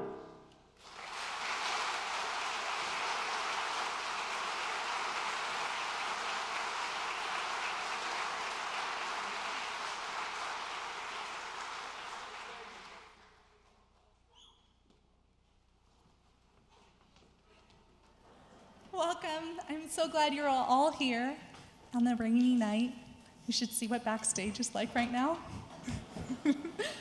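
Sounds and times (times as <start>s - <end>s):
audience applauding: 0.8s - 13.5s.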